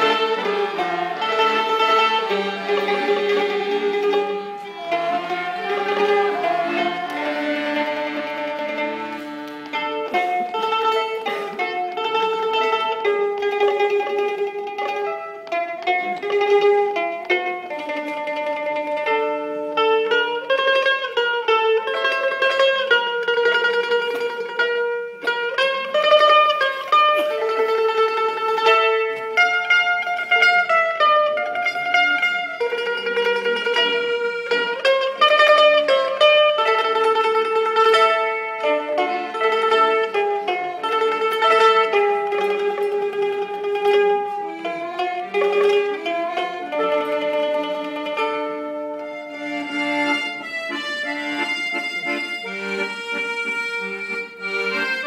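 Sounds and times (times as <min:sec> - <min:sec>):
mandolin plucking: 0:00.0 - 0:55.0
two-string fiddle melody: 0:00.0 - 0:55.0.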